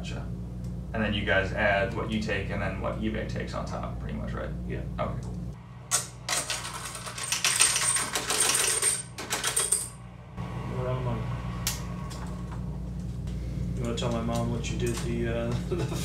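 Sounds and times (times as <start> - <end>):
coins clinking and jingling: 6.3 - 10.0.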